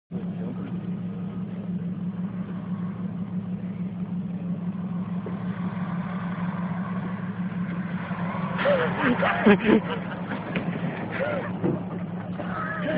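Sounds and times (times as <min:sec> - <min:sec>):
vehicle engine idling: 0:00.1 - 0:12.9.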